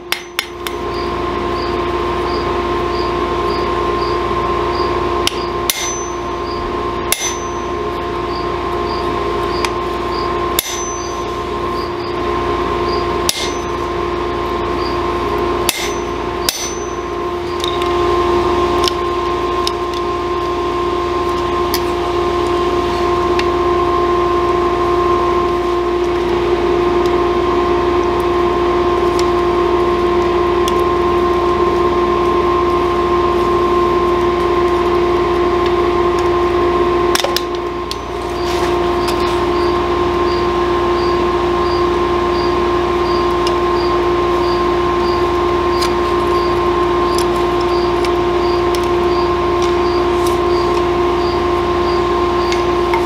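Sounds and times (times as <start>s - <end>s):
hammer strikes on anvil: 0.0s - 0.8s, 5.3s - 6.4s, 7.1s - 7.8s, 10.6s - 11.3s, 13.3s - 13.8s, 15.7s - 17.2s
steady hum: 0.0s - 53.0s.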